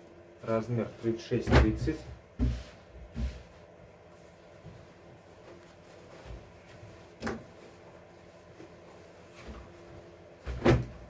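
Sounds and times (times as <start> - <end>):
faint fabric rustle: 2.5 - 10.3.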